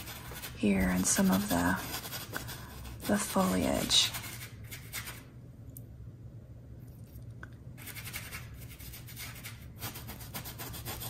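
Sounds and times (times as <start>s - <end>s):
paintbrush scrubbing canvas: 0.0s - 5.2s, 7.8s - 11.0s.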